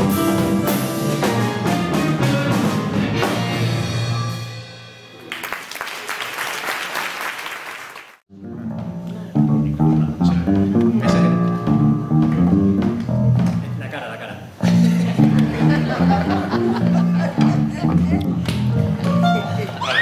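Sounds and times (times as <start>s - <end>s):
audience applauding: 5.2s - 8.2s
electric bass guitar plucked: 8.3s - 13.8s, 14.6s - 19.9s.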